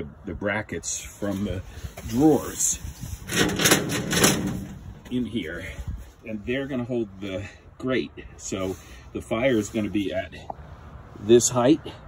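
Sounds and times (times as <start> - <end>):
clattering in metal filing cabinet: 3.2 - 5.1.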